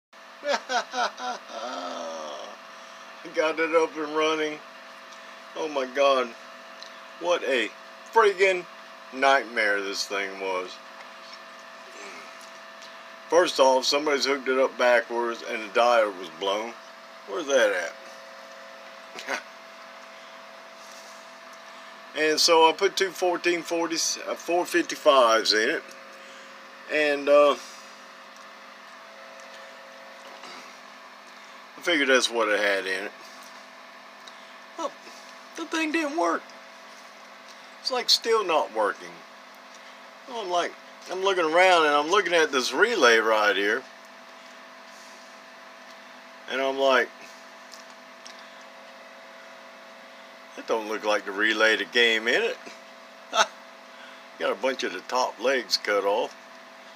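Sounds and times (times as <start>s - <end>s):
background hum: 0.2s - 56.9s.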